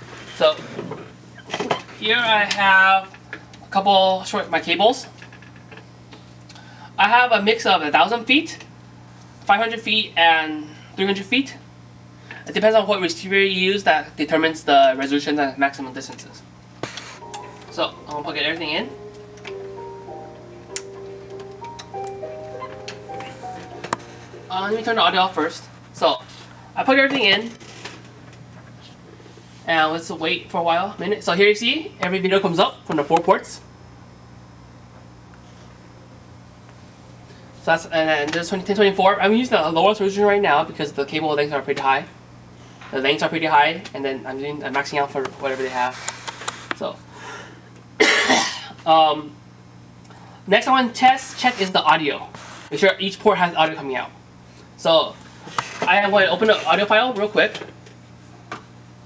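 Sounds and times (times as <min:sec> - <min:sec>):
melody from small speaker: 0:17.2 - 0:25.6
person coughing: 0:48.0 - 0:48.8.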